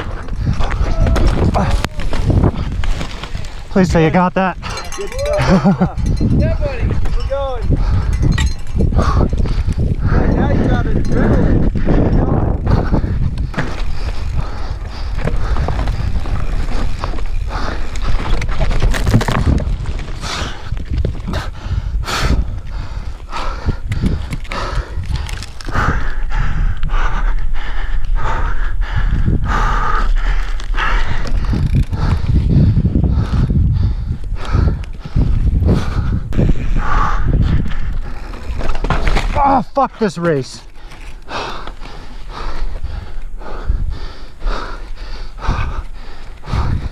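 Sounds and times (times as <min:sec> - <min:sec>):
bike clattering over rocks: 0:00.0 - 0:04.0, 0:13.3 - 0:14.4, 0:15.1 - 0:21.3, 0:38.0 - 0:41.9
wind rumbling on microphone: 0:00.0 - 0:39.8, 0:40.6 - 0:46.9.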